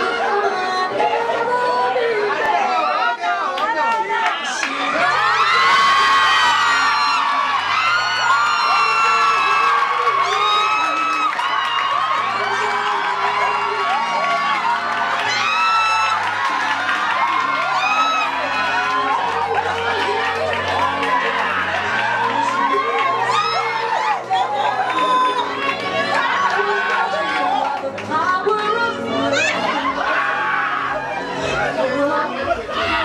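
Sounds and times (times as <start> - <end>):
audience cheering and screaming: 0.0 - 33.0
music with steady bass line: 4.7 - 30.1.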